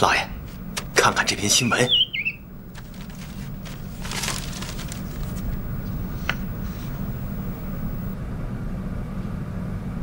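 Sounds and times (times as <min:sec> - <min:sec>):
low background hum: 0:00.0 - 0:10.0
songbird warbling chirp: 0:01.5 - 0:02.5.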